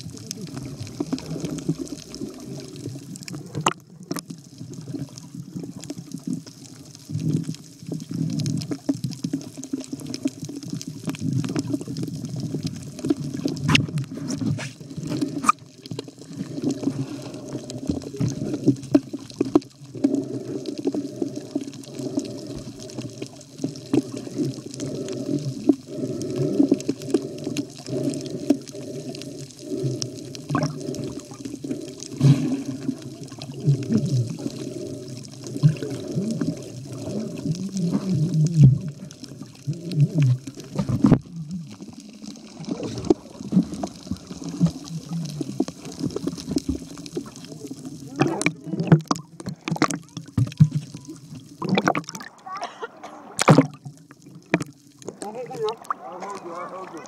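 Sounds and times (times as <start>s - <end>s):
muffled water sloshing and gurgling: 0.0s - 57.0s.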